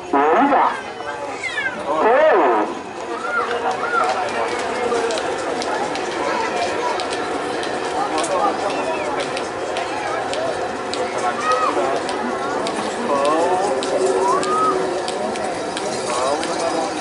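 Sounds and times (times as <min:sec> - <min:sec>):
murmur of outdoor crowd: 0:00.0 - 0:17.0.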